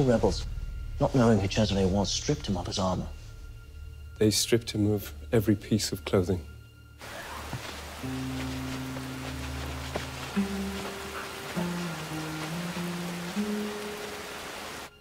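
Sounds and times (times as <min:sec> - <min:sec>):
slow musical score low notes: 0:00.0 - 0:15.0
steady rain falling: 0:07.0 - 0:15.0.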